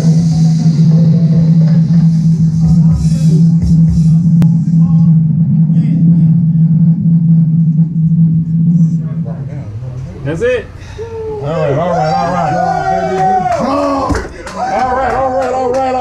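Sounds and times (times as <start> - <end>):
house music over sound system: 0.0 - 5.6
deep steady bass tone: 0.0 - 15.8.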